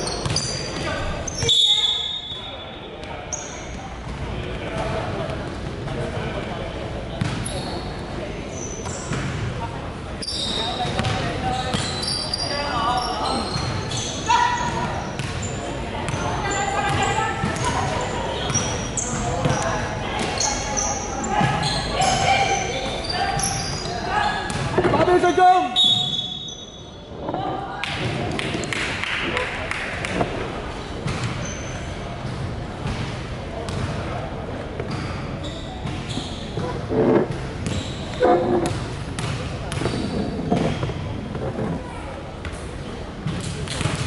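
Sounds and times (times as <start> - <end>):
sneakers squeaking: 0.0 - 5.6, 7.1 - 27.4, 30.7 - 44.0
basketball bouncing: 10.9 - 11.2, 33.7 - 33.9, 38.6 - 40.8.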